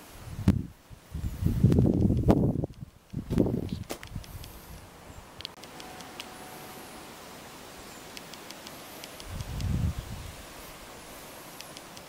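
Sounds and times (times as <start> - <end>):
rustling hiss: 0.0 - 12.0
light ticks: 1.7 - 6.3, 8.1 - 9.8, 11.5 - 12.0
faint high chirps: 5.1 - 12.0.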